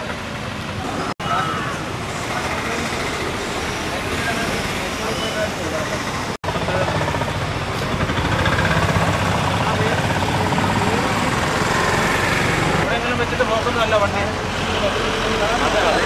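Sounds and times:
street traffic: 0.0s - 16.0s
people talking: 3.9s - 7.1s, 7.8s - 11.5s, 12.8s - 16.0s.

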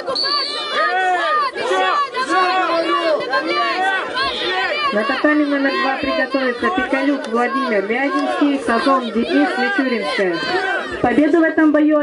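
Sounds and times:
crowd shouting: 0.0s - 12.0s.

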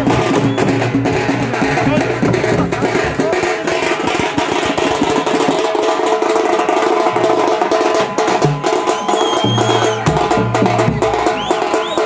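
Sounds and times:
drums beaten with sticks: 0.0s - 12.0s.

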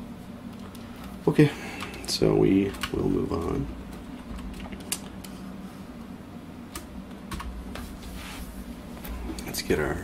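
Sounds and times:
computer keyboard keys clicking: 1.8s - 5.3s.

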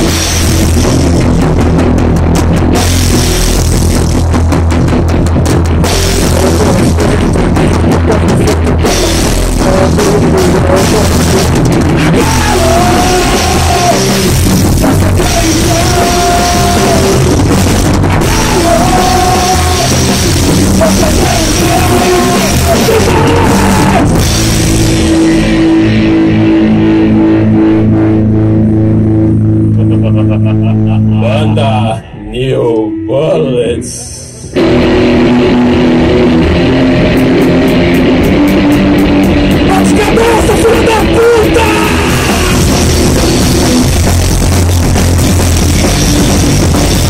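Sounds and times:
drum kit with cymbals: 0.0s - 25.7s, 36.0s - 47.0s
electric guitar: 0.0s - 32.9s, 34.2s - 47.0s
bass guitar: 0.0s - 47.0s.

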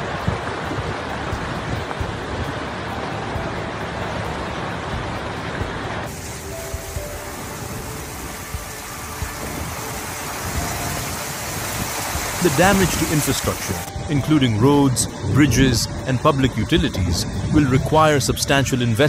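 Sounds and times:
heavy rain and floodwater hiss: 0.0s - 19.0s
faint music: 0.1s - 19.0s.

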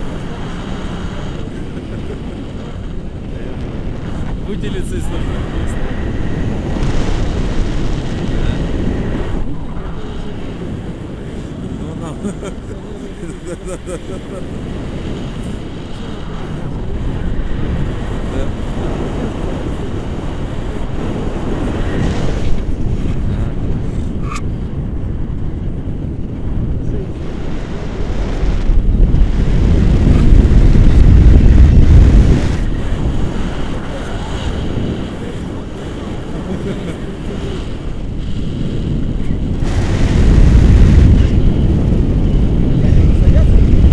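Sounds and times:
wind rushing over microphone: 0.0s - 43.9s.

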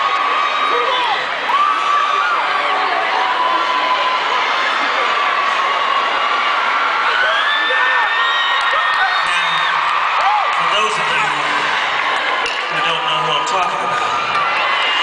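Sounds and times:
concert crowd cheering: 0.0s - 15.0s.

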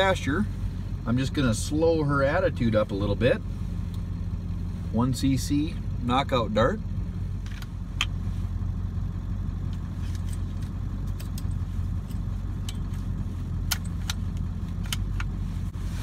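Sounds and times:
truck engine idling: 0.0s - 16.0s.

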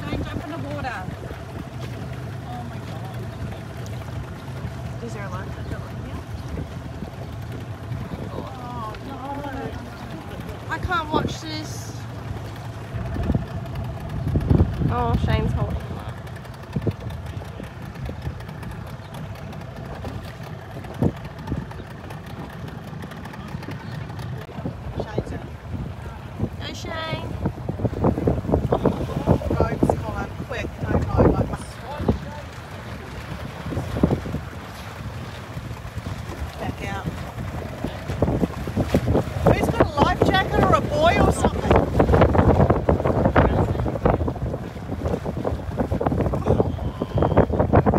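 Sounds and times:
low uneven rumbling: 0.0s - 47.9s
wind buffeting microphone: 0.0s - 47.9s.

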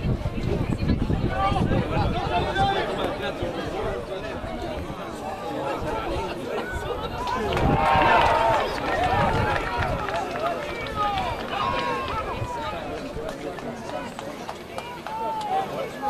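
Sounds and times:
players and spectators shouting: 1.4s - 16.0s.

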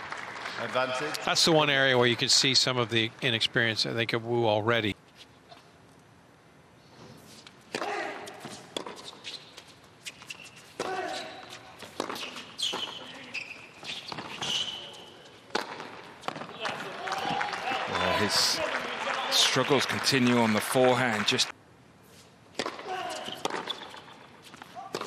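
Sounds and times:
tennis racket hitting ball: 10.8s - 12.9s, 15.5s - 16.5s, 22.5s - 23.9s
crowd noise: 16.5s - 21.5s.

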